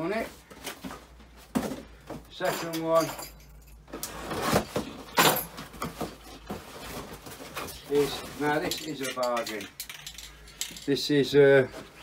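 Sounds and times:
rustling in cardboard box: 0:04.1 - 0:08.7.

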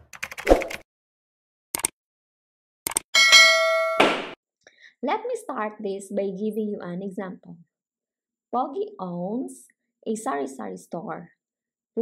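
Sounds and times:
bell-like ding: 0:03.2 - 0:04.2.

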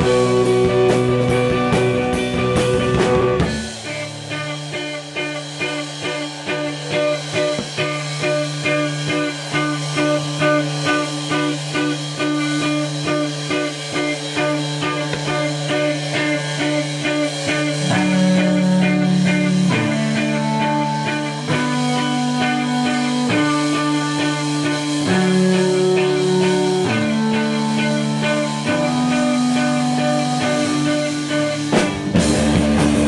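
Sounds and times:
drums: 0:00.0 - 0:33.0
electric guitar: 0:00.0 - 0:33.0
live rock band playing: 0:00.0 - 0:33.0.

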